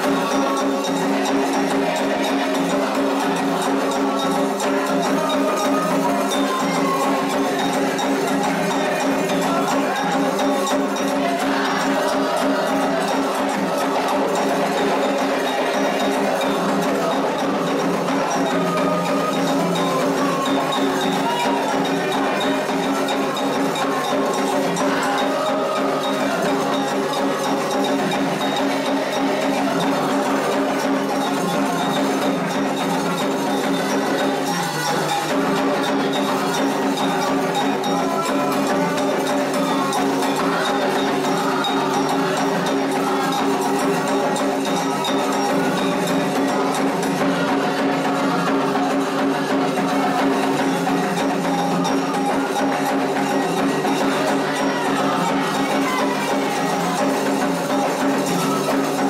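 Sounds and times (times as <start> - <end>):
agogo bell: 0.0 - 59.0
hand drums playing: 0.0 - 59.0
voices chanting: 0.0 - 59.0.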